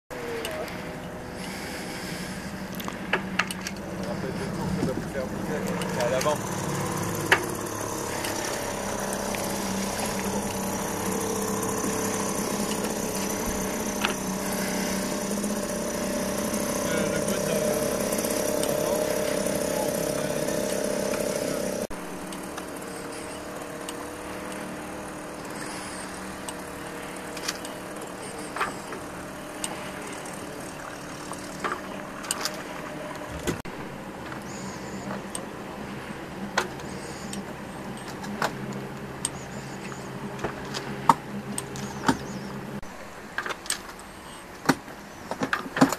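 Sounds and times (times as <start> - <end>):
outboard motor running: 0.1 - 45.9.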